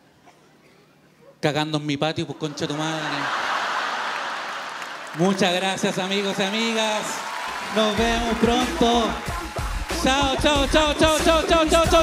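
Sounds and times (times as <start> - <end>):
audience laughing and applauding: 2.4 - 11.5.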